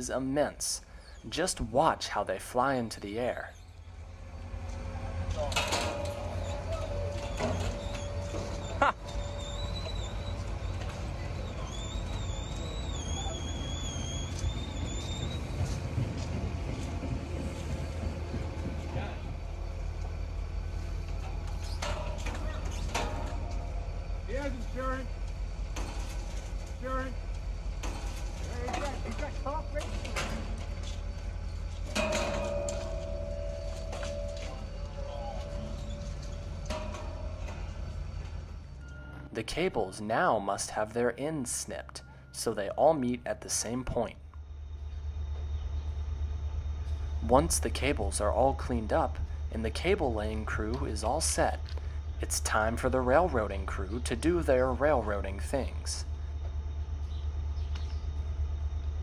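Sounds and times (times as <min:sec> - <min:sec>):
low engine rumble: 0:00.0 - 0:59.0
people's voices: 0:47.2 - 0:56.0.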